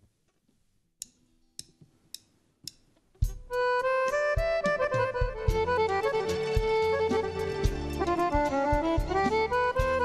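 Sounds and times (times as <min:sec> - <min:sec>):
folk band with violin and accordion: 0:03.4 - 0:10.0.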